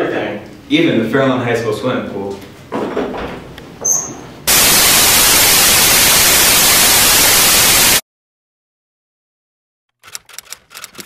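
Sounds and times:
white noise static hiss: 0:04.5 - 0:08.0.

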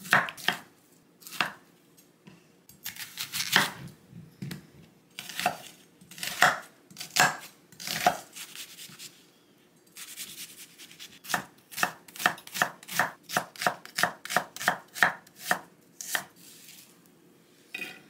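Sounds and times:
soft rustle: 0:16.4 - 0:17.7.

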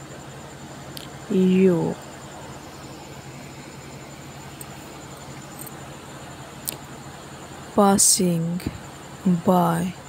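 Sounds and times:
faint high whine: 0:00.0 - 0:10.0
low hum: 0:00.0 - 0:10.0.

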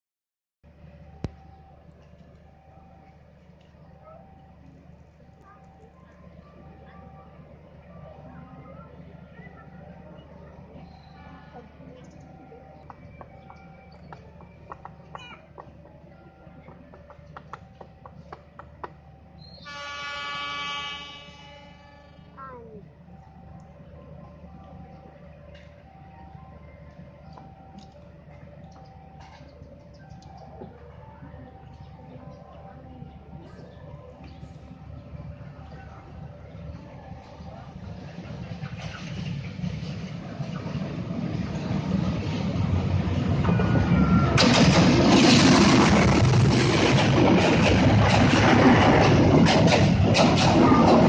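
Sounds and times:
diesel locomotive passing: 0:00.7 - 0:51.0
train horn: 0:19.6 - 0:22.4
brief high tone: 0:43.4 - 0:44.4.

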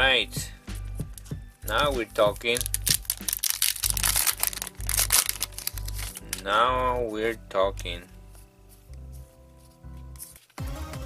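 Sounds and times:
background music with bass beat: 0:00.0 - 0:03.4, 0:09.0 - 0:11.0
foil wrapper crinkling and tearing: 0:01.2 - 0:06.8.

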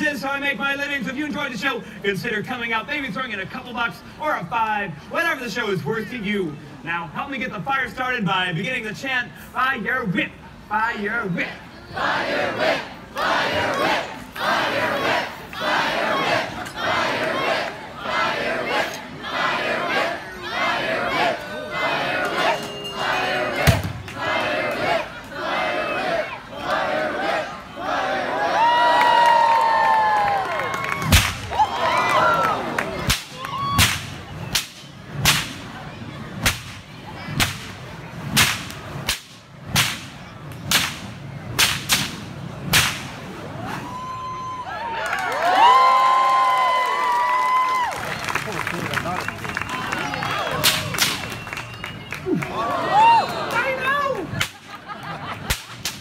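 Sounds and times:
crowd chanting: 0:11.5 - 0:28.7
crowd cheering and whooping: 0:28.2 - 0:33.9, 0:43.4 - 0:55.5
bullwhip cracking: 0:31.1 - 0:31.5, 0:33.0 - 0:35.7, 0:36.4 - 0:43.3, 0:50.6 - 0:51.4, 0:54.4 - 0:54.7, 0:55.4 - 0:56.0.

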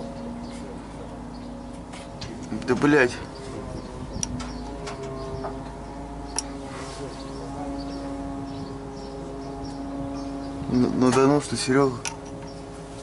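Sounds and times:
steady mechanical hum: 0:00.0 - 0:13.0.

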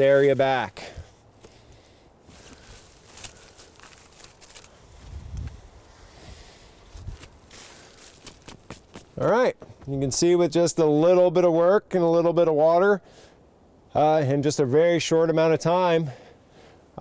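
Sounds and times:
leaves crackling: 0:00.0 - 0:10.4
boots shuffling through wet leaves: 0:02.2 - 0:05.9, 0:06.7 - 0:08.9
dull footfall thumps: 0:08.1 - 0:10.3.

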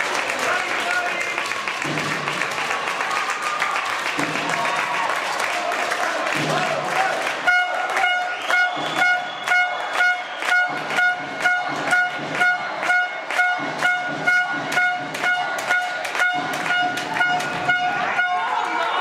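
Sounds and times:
rhythmic drum beats: 0:00.0 - 0:19.0
horn tooting short blasts: 0:07.4 - 0:18.6.

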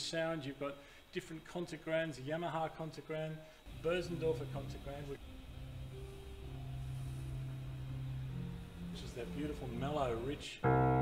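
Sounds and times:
soft digital piano notes: 0:03.7 - 0:11.0.

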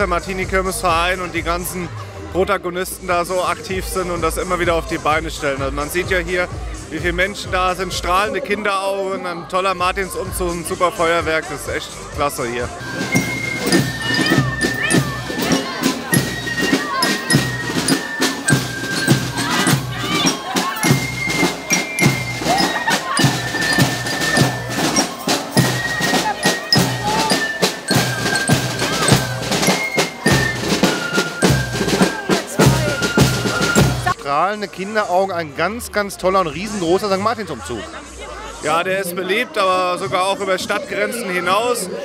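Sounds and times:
flute melody: 0:12.8 - 0:34.2
snare and bass drum beats: 0:12.8 - 0:34.2.

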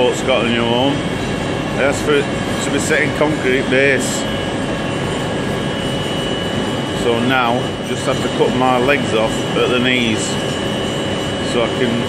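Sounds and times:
faint high whine: 0:00.0 - 0:12.0
machine-shop drone: 0:00.0 - 0:12.0.

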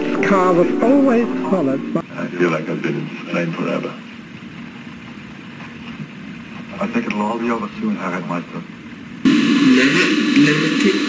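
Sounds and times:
aircraft engine drone: 0:00.0 - 0:02.1, 0:09.3 - 0:11.0.

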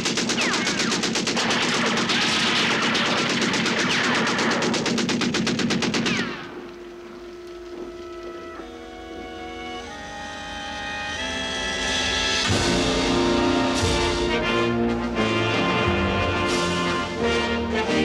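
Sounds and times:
machine-gun fire: 0:00.0 - 0:07.8
orchestral film music: 0:06.8 - 0:18.0.

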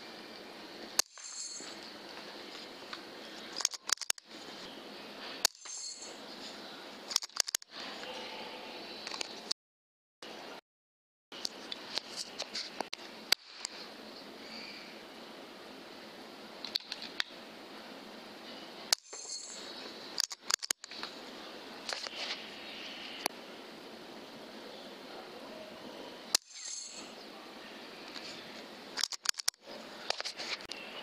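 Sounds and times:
sharp clicks and knocks: 0:03.6 - 0:04.3, 0:07.1 - 0:07.7, 0:20.2 - 0:21.1, 0:29.0 - 0:30.4.

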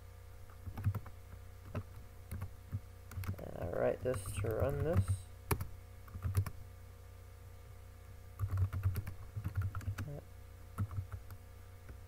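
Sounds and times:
steady low hum: 0:00.0 - 0:12.0
computer keyboard keystrokes: 0:00.6 - 0:03.4, 0:04.1 - 0:06.6, 0:08.4 - 0:10.1, 0:10.8 - 0:12.0.

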